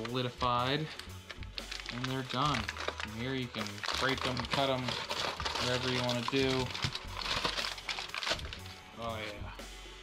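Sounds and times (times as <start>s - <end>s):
background music: 0.0s - 10.0s
aluminium foil crinkling: 0.8s - 9.4s.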